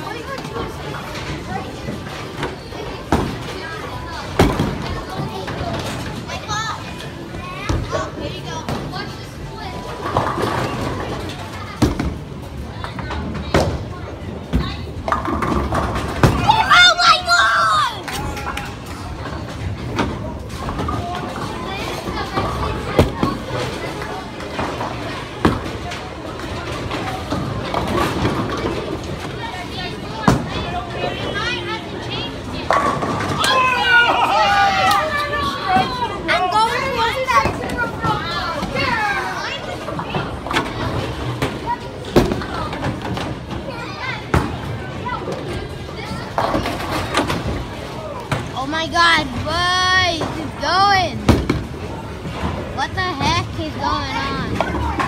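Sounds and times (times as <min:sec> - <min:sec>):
bowling alley background noise: 0:00.0 - 0:55.0
children chattering: 0:00.0 - 0:55.0
children shouting and squealing: 0:16.3 - 0:18.4, 0:33.3 - 0:36.2.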